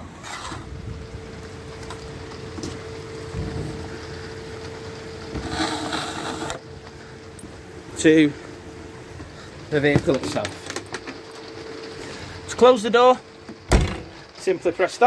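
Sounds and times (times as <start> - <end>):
rustle: 0.0 - 12.6
faint steady hum: 0.0 - 15.0
handling noises: 9.0 - 12.4
low thump: 13.7 - 14.2.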